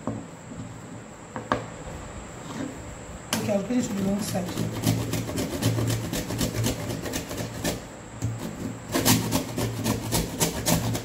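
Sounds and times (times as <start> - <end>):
fondant rasping on hand grater: 3.8 - 11.0.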